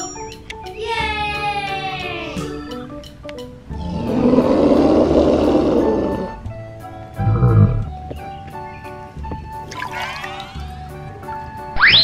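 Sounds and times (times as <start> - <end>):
light background music: 0.0 - 12.0
growling creature roar: 3.7 - 6.4, 7.2 - 7.9.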